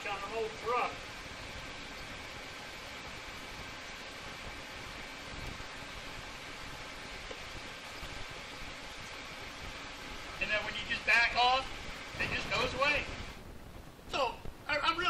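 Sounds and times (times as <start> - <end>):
welding arc hissing: 0.0 - 15.0.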